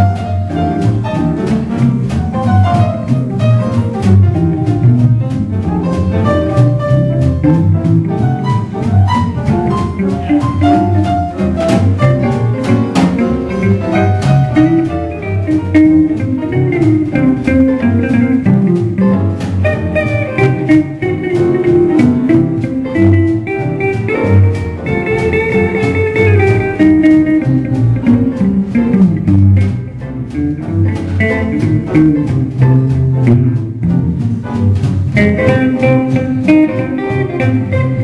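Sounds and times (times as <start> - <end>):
electric guitar blues: 0.0 - 38.0.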